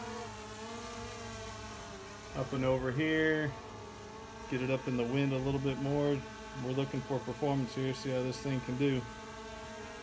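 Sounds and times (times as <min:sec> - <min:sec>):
drone propellers buzzing: 0:00.0 - 0:10.0.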